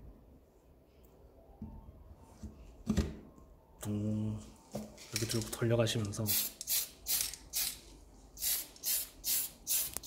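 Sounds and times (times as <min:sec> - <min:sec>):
aerosol spray can hissing: 0:06.3 - 0:07.8, 0:08.4 - 0:10.0.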